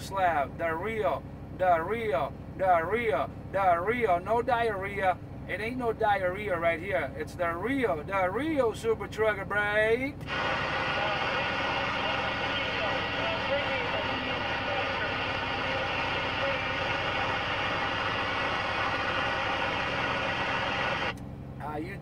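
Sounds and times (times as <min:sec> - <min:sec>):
radio static: 0:10.2 - 0:21.1
faint garbled radio voice: 0:10.3 - 0:21.1.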